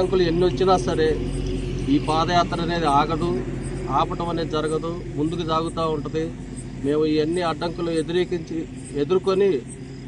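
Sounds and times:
man speaking: 0.0 - 9.7
steady low hum: 0.0 - 10.0.

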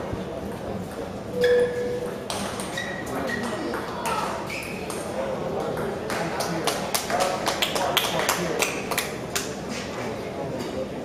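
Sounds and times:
murmur of spectators' voices: 0.0 - 11.0.

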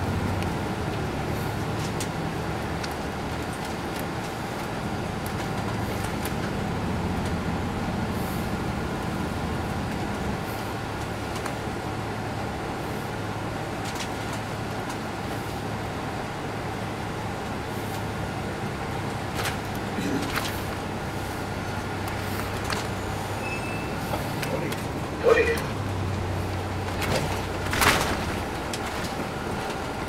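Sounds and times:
interior rattles and clicks: 0.0 - 8.1, 13.5 - 15.7, 17.4 - 23.2, 23.8 - 30.0
diesel engine running: 0.0 - 30.0
road noise: 0.0 - 30.0.

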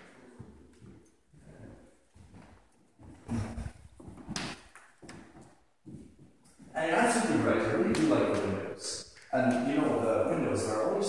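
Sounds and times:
footsteps on wooden floor: 0.0 - 6.8.

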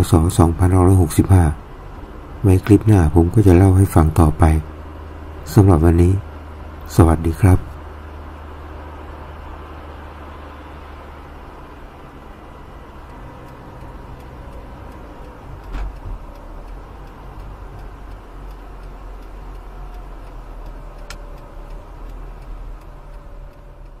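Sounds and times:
low engine hum: 0.0 - 24.0
motorbikes and vehicles passing: 0.0 - 24.0
sharp click: 15.6 - 17.2, 21.0 - 21.3.

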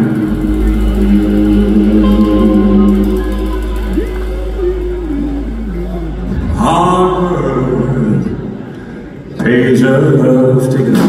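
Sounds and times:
deep steady low end: 0.0 - 8.8
electric guitars sustained notes: 0.0 - 9.0.

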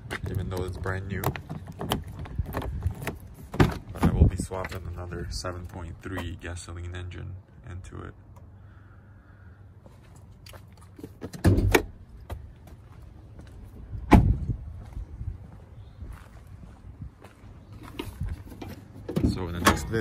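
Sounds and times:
car door clunks and thumps: 0.1 - 4.8, 11.1 - 12.5, 14.0 - 14.5, 18.0 - 20.0.

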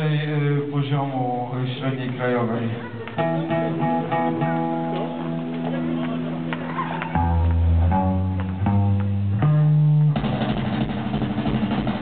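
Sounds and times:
rock band with distorted guitars: 2.8 - 12.0.

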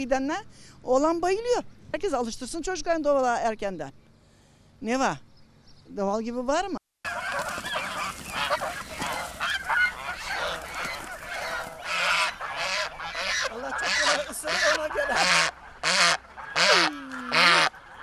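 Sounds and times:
geese honking: 7.1 - 18.0
goose honking loudly: 7.1 - 18.0.

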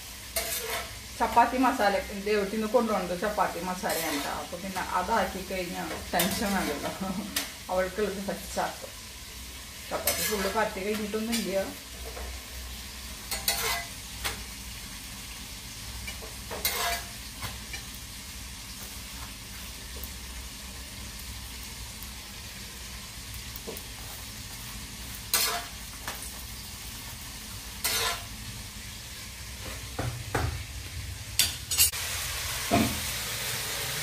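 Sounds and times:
flatbread sizzling on a pan: 0.0 - 34.0.

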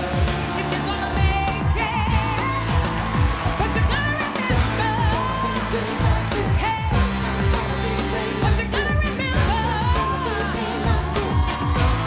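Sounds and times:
live band playing up-tempo song: 0.0 - 12.0
person singing: 0.0 - 12.0.

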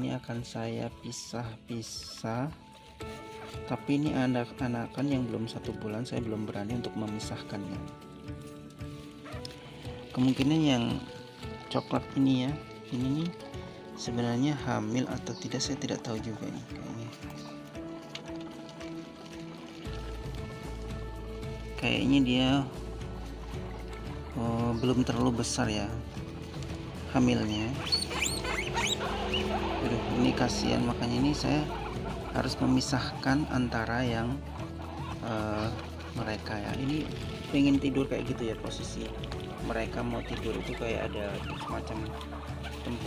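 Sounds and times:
guinea pigs chirping: 0.0 - 43.0
guinea pigs squealing: 0.0 - 43.0
quiet background music: 0.0 - 43.0
person talking: 10.1 - 13.4, 21.7 - 22.8, 24.4 - 26.1, 27.0 - 34.5, 35.2 - 42.0.

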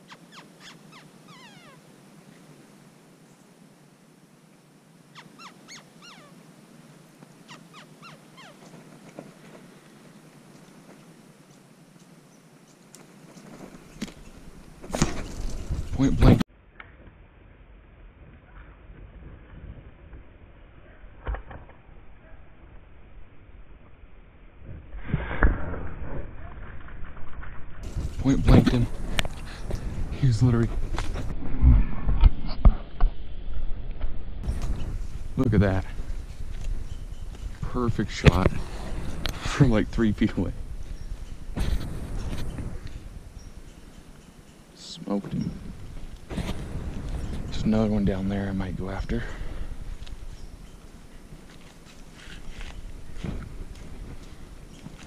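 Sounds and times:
squirrel barking: 0.0 - 1.8, 5.1 - 6.4, 7.5 - 8.7
rustling: 12.7 - 16.2, 34.4 - 55.0
knocks and rustling: 41.1 - 43.0.

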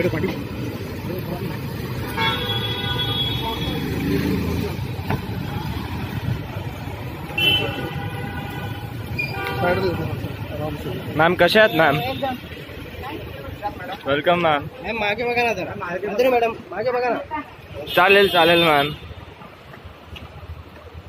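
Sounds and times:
street traffic rumble: 0.0 - 21.0
vehicle horns honking: 2.0 - 4.3, 7.3 - 10.2, 11.5 - 12.4, 17.8 - 19.2.

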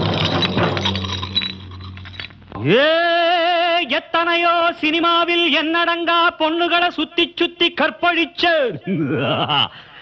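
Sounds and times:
glass clinking and breaking: 0.0 - 2.6.

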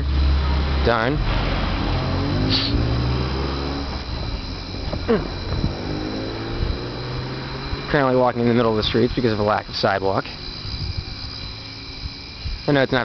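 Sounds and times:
vehicle engine accelerating: 0.0 - 12.7
low rumble of traffic: 0.0 - 13.0.

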